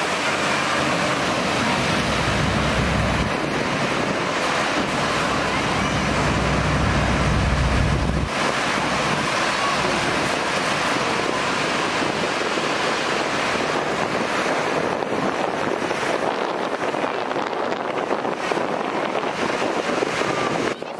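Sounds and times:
heavy low rumble: 0:00.0 - 0:18.3
hovercraft fans rushing: 0:00.0 - 0:20.9
wind on microphone: 0:00.0 - 0:20.9.

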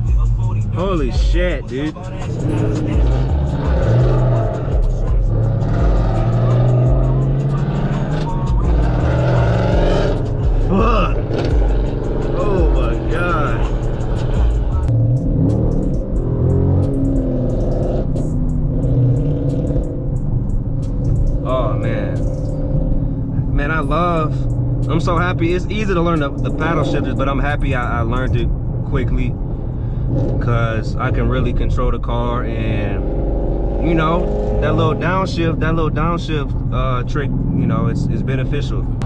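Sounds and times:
music with heavy bass and vocals: 0:00.0 - 0:19.9
car engine running: 0:00.0 - 0:39.0
road noise: 0:00.0 - 0:39.0.

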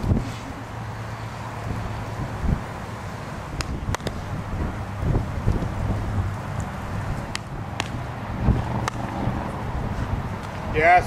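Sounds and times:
wind buffeting microphone: 0:00.0 - 0:11.0
ball hitting glove: 0:03.6 - 0:04.2, 0:07.3 - 0:09.2
bat hitting baseball: 0:03.6 - 0:04.2, 0:07.3 - 0:08.0, 0:08.8 - 0:09.1.

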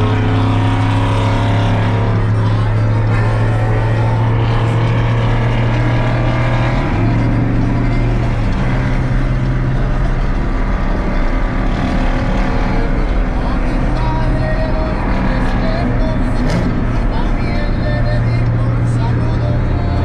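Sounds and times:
truck engine and road drone: 0:00.0 - 0:20.0.

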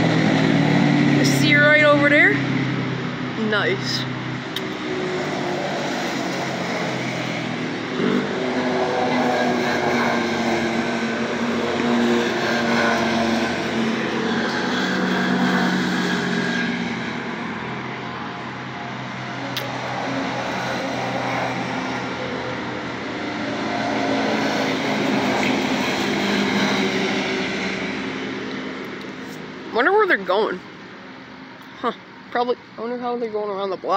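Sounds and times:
utility vehicles driving past: 0:00.0 - 0:32.8.

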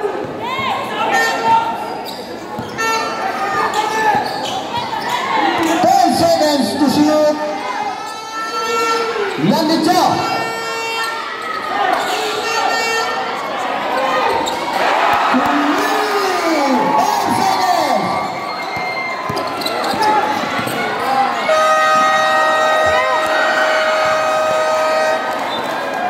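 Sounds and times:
sneakers squeaking: 0:00.2 - 0:06.2, 0:10.2 - 0:15.8, 0:17.8 - 0:26.0
crowd shouting: 0:02.7 - 0:26.0
basketball bouncing: 0:18.7 - 0:20.9, 0:21.9 - 0:24.7.

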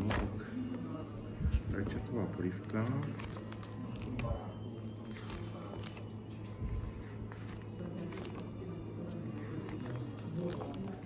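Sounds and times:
plastic menu pages crackling: 0:01.5 - 0:11.0.

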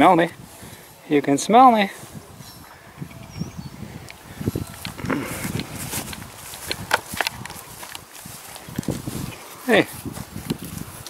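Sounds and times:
horse hooves knocking and scuffing: 0:04.6 - 0:11.0
horse snuffling: 0:04.7 - 0:07.8.

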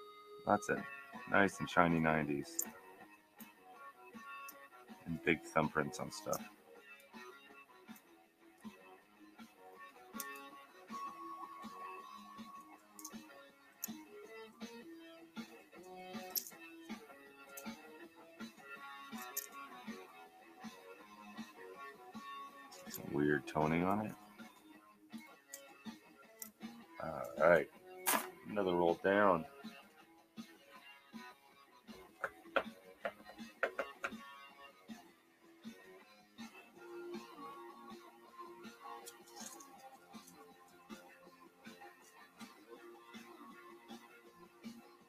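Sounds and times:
guitar music: 0:00.0 - 0:45.0
pennies clicking: 0:19.2 - 0:19.6.

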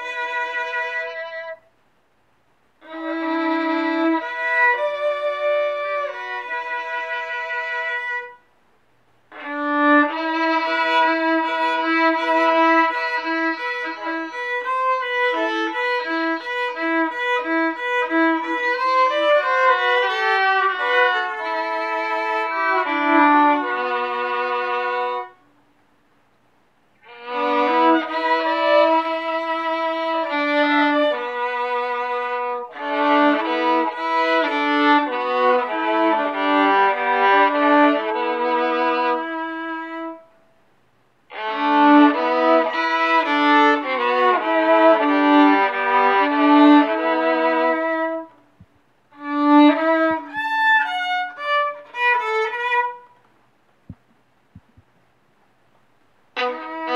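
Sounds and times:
solo violin bowed: 0:00.0 - 0:01.7, 0:02.8 - 0:08.5, 0:09.3 - 0:25.5, 0:27.0 - 0:40.4, 0:41.3 - 0:53.3, 0:56.3 - 0:56.9.

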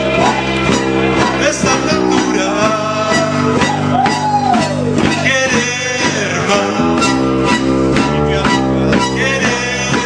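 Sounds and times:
acoustic band playing: 0:00.0 - 0:10.0
sliding melody line: 0:00.0 - 0:10.0.

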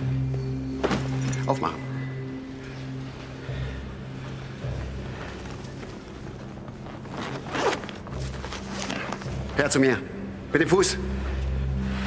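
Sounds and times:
bag zip being pulled open: 0:06.8 - 0:09.4
low steady drone: 0:09.1 - 0:12.0.

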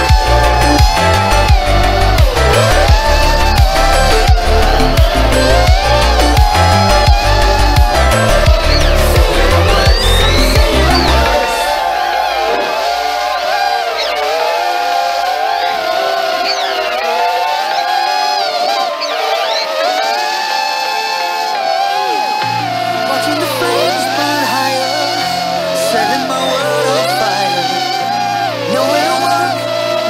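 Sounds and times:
electronic music: 0:00.0 - 0:30.0
quadcopter motors whining: 0:00.0 - 0:30.0.

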